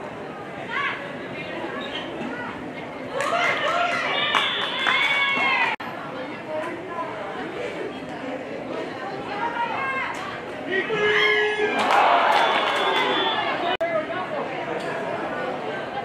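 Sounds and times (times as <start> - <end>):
voices chattering and calling out: 0.0 - 16.0.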